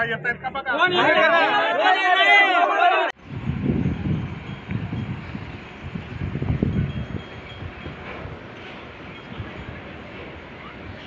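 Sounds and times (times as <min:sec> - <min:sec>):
wind buffeting microphone: 0:03.2 - 0:11.0.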